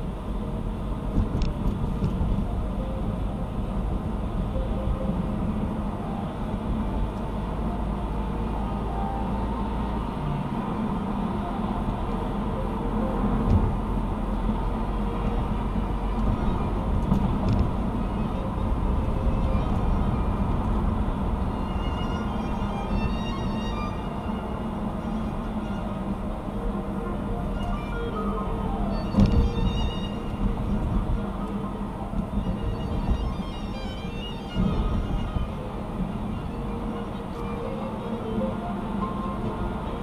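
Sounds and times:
car cabin road and engine noise: 0.0 - 40.0.

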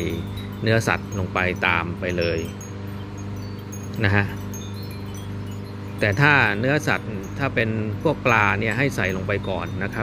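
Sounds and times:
person speaking: 0.0 - 2.7, 3.8 - 4.9, 5.9 - 10.0
high ringing tones: 0.0 - 10.0
steady low hum: 0.0 - 10.0.

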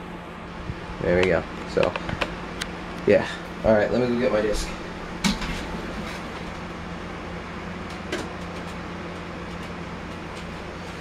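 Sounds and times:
steady background hum: 0.0 - 11.0.

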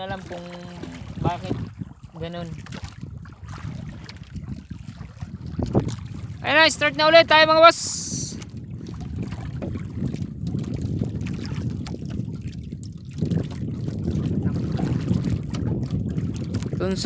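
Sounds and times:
water lapping against boat: 0.0 - 17.0
wind buffeting microphone: 0.0 - 17.0
faint knocks from hull: 9.2 - 11.9.

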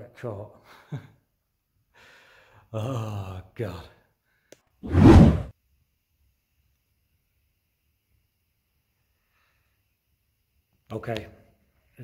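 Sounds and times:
loud rush of noise on microphone: 4.9 - 5.5.

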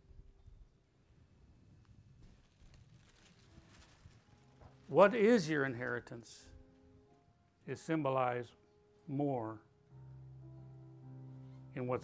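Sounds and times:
man speaking: 4.9 - 6.5, 7.7 - 9.6, 11.8 - 12.0.

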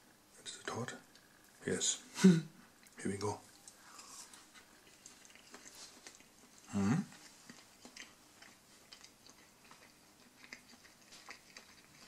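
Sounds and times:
faint chewing: 0.9 - 1.7, 2.6 - 12.0.

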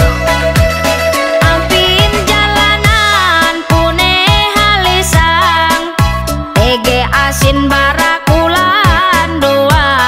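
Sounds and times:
deep kick drum: 0.0 - 4.5, 5.2 - 5.4
pop backing with bass: 0.0 - 10.0
woman singing: 1.3 - 10.0.

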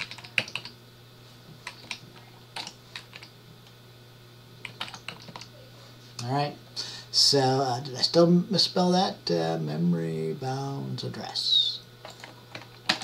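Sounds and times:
computer keyboard keystrokes: 0.0 - 0.8, 1.6 - 2.0, 2.6 - 3.3, 4.6 - 5.5.

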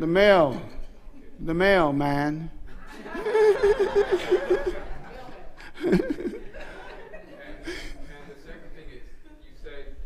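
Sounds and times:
person chuckling: 5.6 - 6.8.

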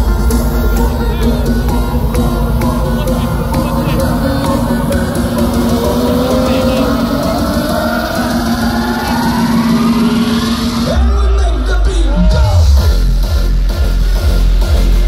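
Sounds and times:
electronic dance music: 0.0 - 15.0
heavy bass line: 0.0 - 15.0.

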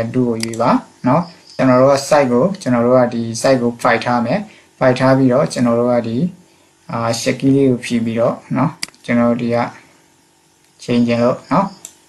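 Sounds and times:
man speaking: 0.0 - 9.9, 10.8 - 11.8.

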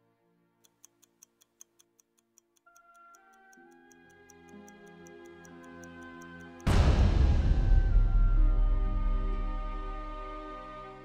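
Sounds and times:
stopwatch ticking: 0.6 - 6.8
sustained music chords: 6.6 - 11.0.

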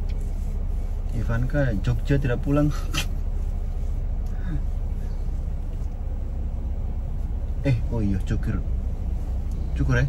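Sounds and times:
car engine idling rumble: 0.0 - 10.0.

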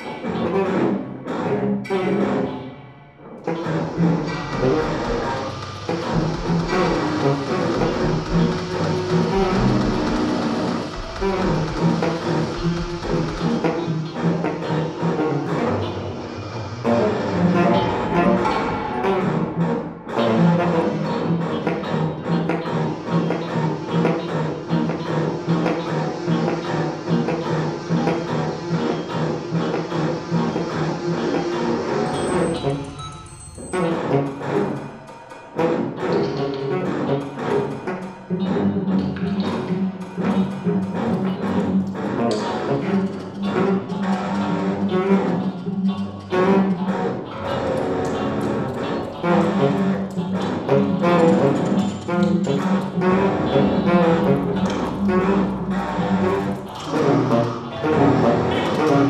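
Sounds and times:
cello: 0.0 - 59.0
electric guitar: 0.0 - 59.0
tenor saxophone: 3.4 - 33.0, 33.6 - 59.0
deep low drone: 3.6 - 34.2, 50.6 - 58.8.

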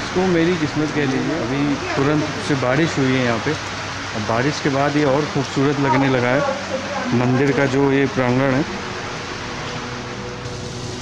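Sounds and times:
outdoor noise hiss: 0.0 - 11.0.

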